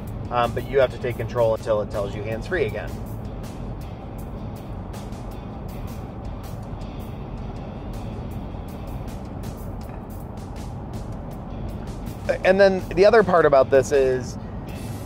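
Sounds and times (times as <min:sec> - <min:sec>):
background music: 0:00.0 - 0:15.0
road and engine noise: 0:00.0 - 0:15.0.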